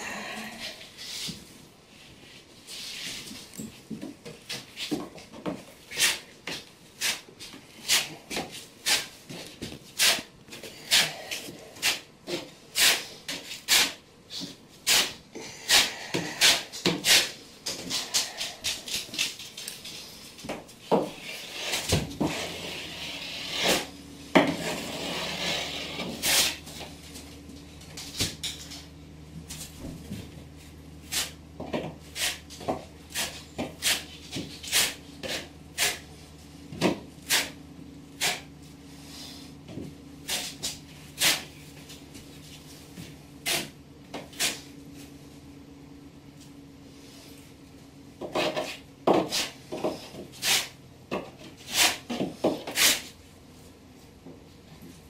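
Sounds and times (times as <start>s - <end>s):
low steady hum: 0.0s - 55.0s
metal trowel scraping mortar: 21.2s - 26.7s, 33.1s - 36.1s, 38.2s - 38.5s, 51.6s - 53.1s.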